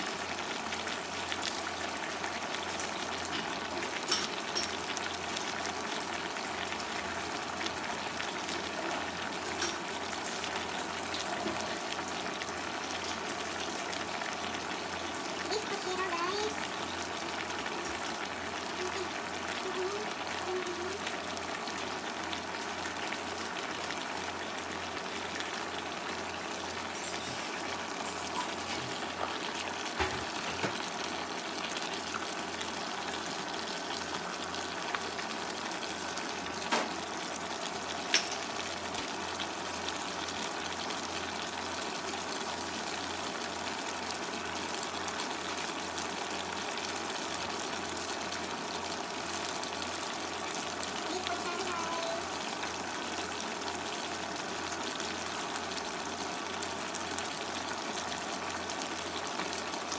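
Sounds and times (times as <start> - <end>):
broth bubbling in a pot: 0.0 - 59.9.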